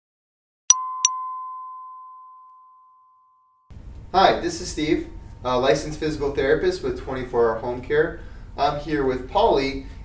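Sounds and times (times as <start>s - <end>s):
bell-like chime: 0.7s - 3.7s.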